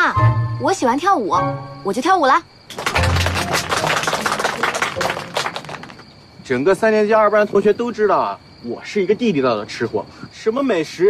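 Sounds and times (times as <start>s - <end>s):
group clapping: 2.7s - 6.0s.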